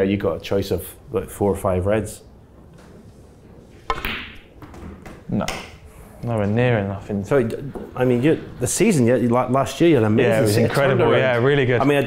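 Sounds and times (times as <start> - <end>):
cue tip striking ball: 3.9 - 5.8
snooker balls clicking: 3.9 - 5.8.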